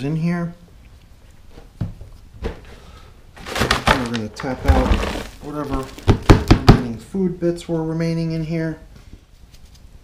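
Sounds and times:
plastic container rustling and tapping: 3.4 - 6.9.

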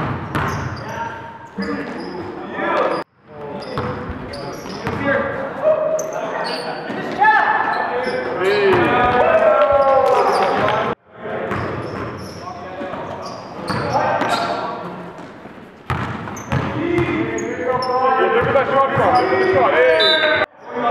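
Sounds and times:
basketball bouncing on gym floor: 0.0 - 0.8, 15.9 - 17.2
players shouting: 5.2 - 11.0.

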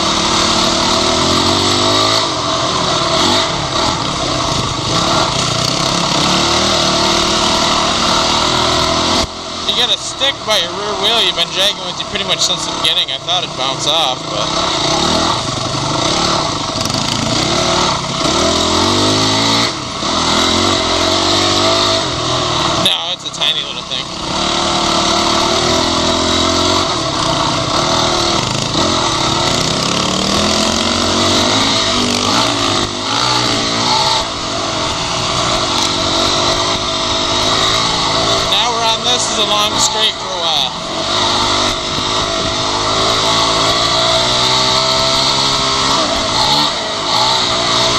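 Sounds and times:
dirt bike engine revving: 0.0 - 47.9.

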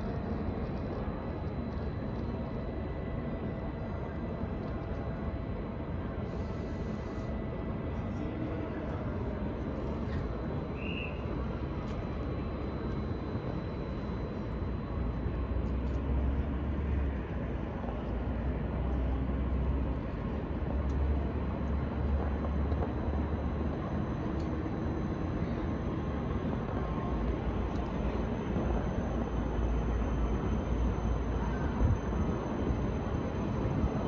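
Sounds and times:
city noise: 0.0 - 34.0
distant rail traffic rumble: 0.0 - 34.0.

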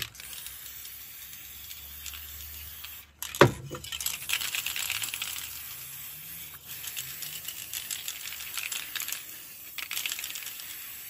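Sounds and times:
spray cans rattling and clicking: 0.0 - 11.0.

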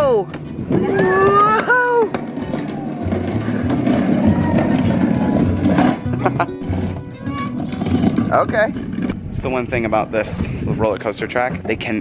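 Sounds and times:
background music: 0.0 - 12.0
plastic wheels rumbling on concrete: 0.0 - 12.0.

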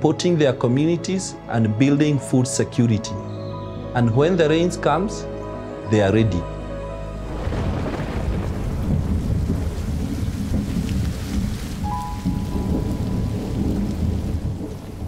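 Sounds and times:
heavy rainfall: 7.2 - 15.0
rolling thunder: 7.3 - 15.0.

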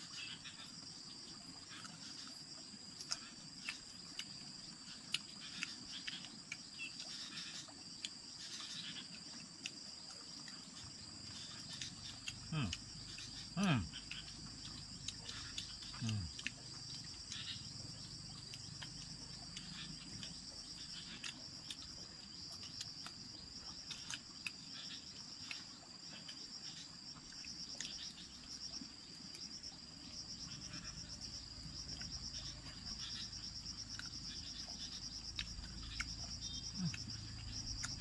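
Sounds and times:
insects trilling: 0.0 - 38.0.

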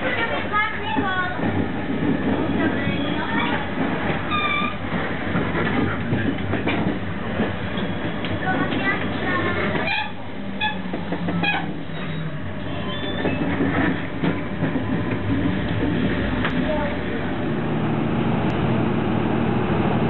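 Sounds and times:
train rumble from inside carriage: 0.0 - 20.0
short pitched squeal: 11.4 - 13.5.

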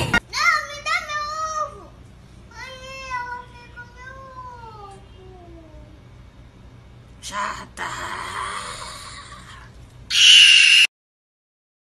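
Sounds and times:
high strained squeal: 10.1 - 10.9
piercing shriek: 10.1 - 10.9.

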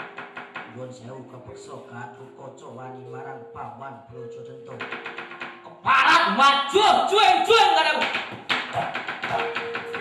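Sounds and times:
mallet knocking on wooden chest: 0.0 - 0.8, 4.8 - 5.7, 8.0 - 10.0
gamelan ringing tones: 1.3 - 5.8.

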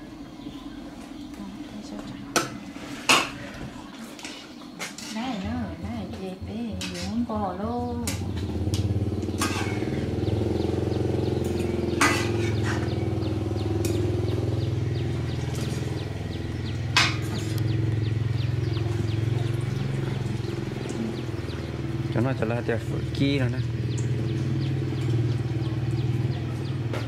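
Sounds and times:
small engine idling: 7.9 - 27.0.

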